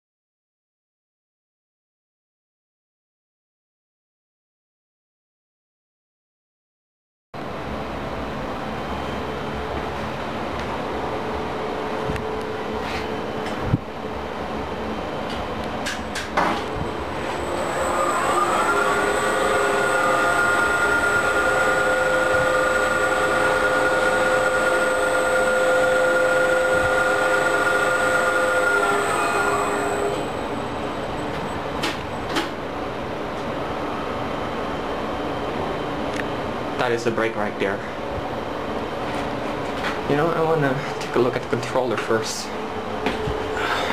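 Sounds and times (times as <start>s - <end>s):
elevator motor whine: 7.4s - 36.8s.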